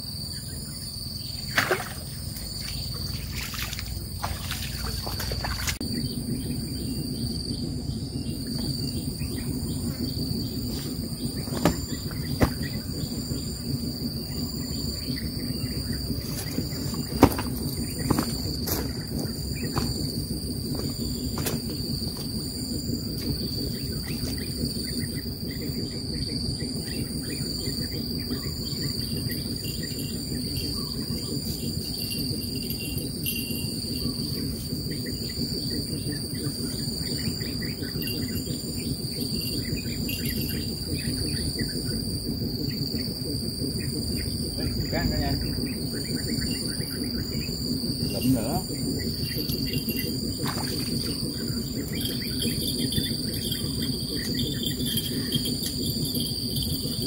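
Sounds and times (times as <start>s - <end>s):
high insect chorus: 0.0s - 57.0s
low rumble: 0.0s - 57.0s.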